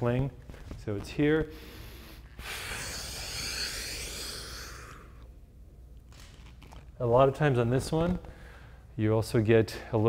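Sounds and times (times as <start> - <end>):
person exhaling: 1.5 - 5.3.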